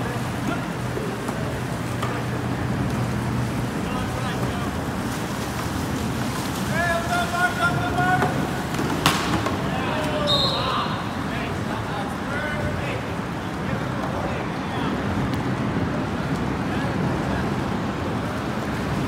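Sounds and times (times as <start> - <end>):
wind and water hiss: 0.0 - 19.0
players shouting: 6.7 - 15.1.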